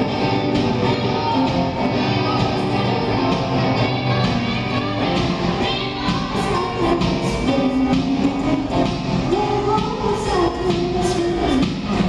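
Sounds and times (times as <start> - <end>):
electric guitar playing: 0.0 - 9.8.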